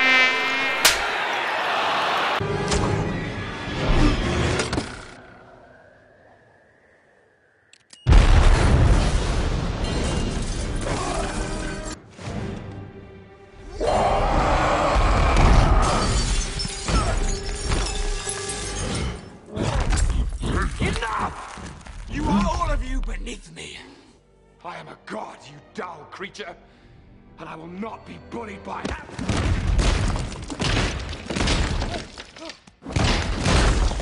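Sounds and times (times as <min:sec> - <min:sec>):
harsh buzzing tone: 0:00.0 - 0:01.0
arena crowd noise: 0:00.0 - 0:03.2
sharp click: 0:00.8 - 0:01.1
glass window shattering: 0:15.8 - 0:19.3.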